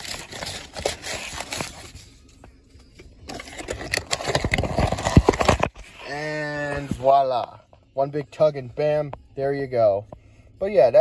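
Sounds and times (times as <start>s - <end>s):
cardboard and plastic rustling: 0.0s - 2.1s, 3.3s - 7.4s.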